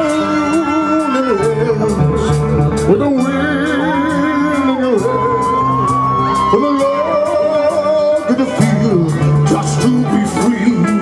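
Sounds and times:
guitar melody: 0:00.0 - 0:11.0
heavy metal band playing: 0:00.0 - 0:11.0
singer holding long note: 0:02.9 - 0:09.5.

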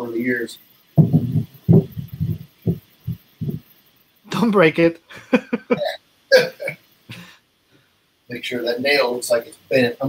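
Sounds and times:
painting knocking against wall: 0:01.0 - 0:03.6.

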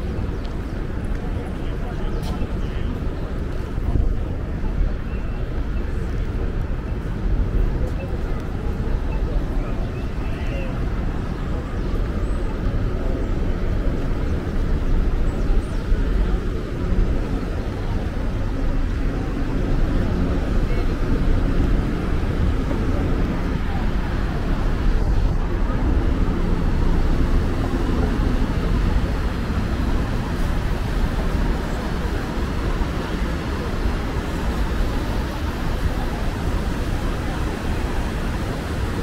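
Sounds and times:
city traffic rumble: 0:00.0 - 0:39.0.

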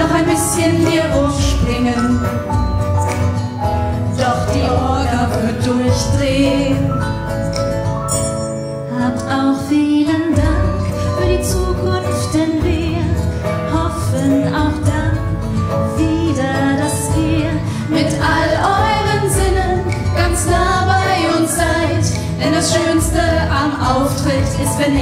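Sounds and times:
women singing: 0:00.0 - 0:02.4, 0:04.1 - 0:07.2, 0:08.9 - 0:25.0
acoustic guitar: 0:00.0 - 0:25.0.

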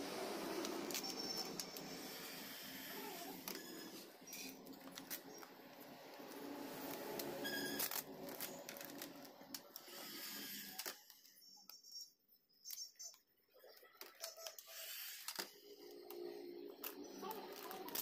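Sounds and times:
small clicks and crackles: 0:04.3 - 0:18.0
plastic film crinkling: 0:06.2 - 0:09.9, 0:16.8 - 0:18.0.

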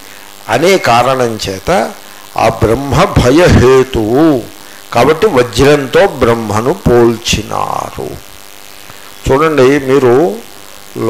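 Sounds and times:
electrical mains hum: 0:00.0 - 0:11.0
man speaking: 0:00.5 - 0:08.2, 0:09.2 - 0:11.0.

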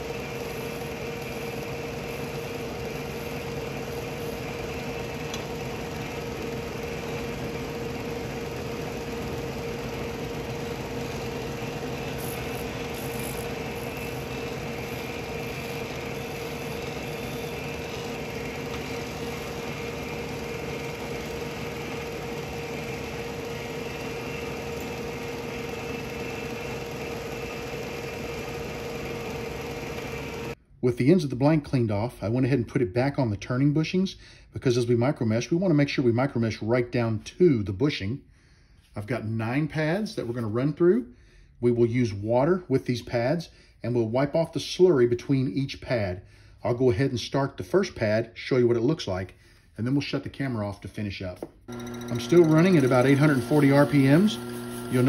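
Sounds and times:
disc sander humming: 0:00.0 - 0:30.6, 0:51.7 - 0:55.0
wood pressed against sanding disc: 0:00.0 - 0:30.6, 0:51.7 - 0:55.0.

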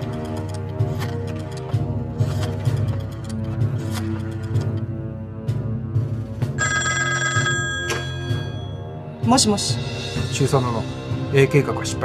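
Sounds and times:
telephone bell ringing: 0:06.6 - 0:08.9.

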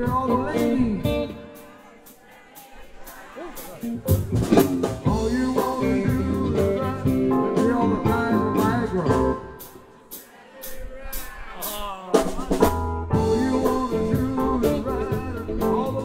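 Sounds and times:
live blues-rock band: 0:00.0 - 0:01.8, 0:03.0 - 0:10.0, 0:12.1 - 0:16.0
man singing: 0:00.0 - 0:02.2, 0:05.0 - 0:09.6, 0:10.6 - 0:16.0
electric guitar: 0:03.8 - 0:09.6, 0:12.6 - 0:16.0.

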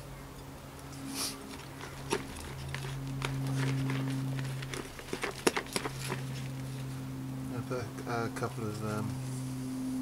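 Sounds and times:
steady low hum: 0:00.0 - 0:10.0
trowel scraping soil: 0:01.0 - 0:07.0.

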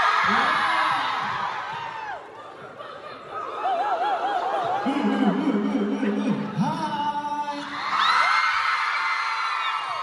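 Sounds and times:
man speaking: 0:04.9 - 0:07.8.

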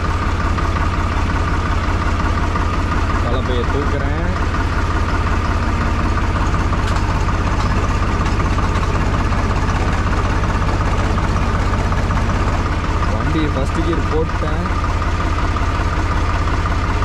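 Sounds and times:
tractor diesel engine idling: 0:00.0 - 0:17.0.

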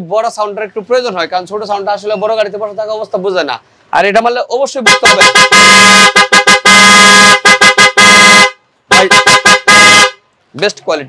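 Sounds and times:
motorcycle horn beeping: 0:04.9 - 0:10.2.

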